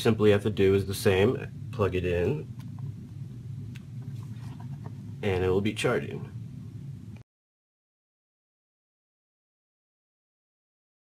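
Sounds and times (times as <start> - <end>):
steady low hum: 0.0 - 7.2.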